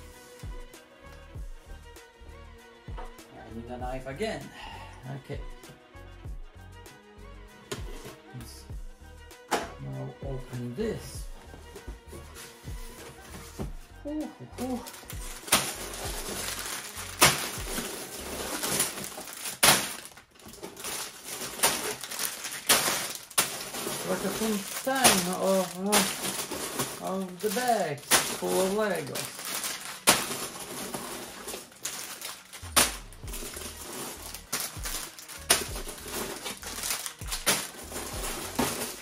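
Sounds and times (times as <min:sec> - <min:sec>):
background music: 0:00.0 - 0:39.0
plastic bags crinkling: 0:14.6 - 0:39.0.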